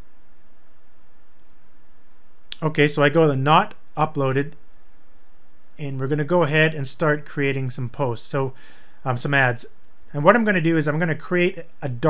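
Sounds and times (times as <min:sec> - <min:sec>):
steady background hiss: 0:00.0 - 0:12.0
computer mouse clicks: 0:01.4 - 0:01.6.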